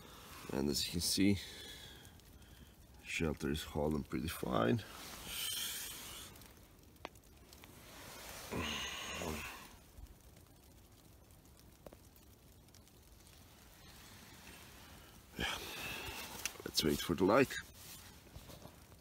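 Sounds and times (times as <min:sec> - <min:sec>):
faint ticks: 0:00.0 - 0:19.0
sleeping bag rustling: 0:07.6 - 0:09.7, 0:13.6 - 0:19.0.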